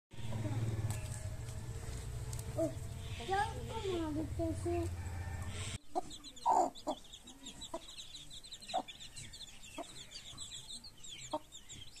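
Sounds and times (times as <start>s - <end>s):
chicks peeping: 0.2s - 12.0s
hen clucking: 2.4s - 12.0s.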